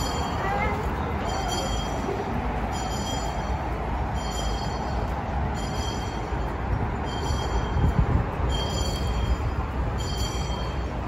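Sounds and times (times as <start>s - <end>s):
handbell ringing: 0.0s - 11.0s
outdoor background rumble: 0.0s - 11.0s.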